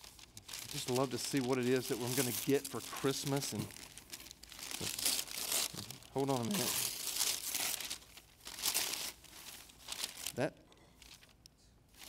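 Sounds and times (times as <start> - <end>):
wrapping paper tearing and crumpling: 0.0 - 10.4, 11.0 - 11.3.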